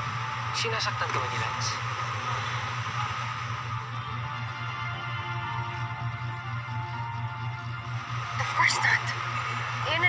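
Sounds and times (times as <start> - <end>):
low sustained drone music: 0.0 - 10.0.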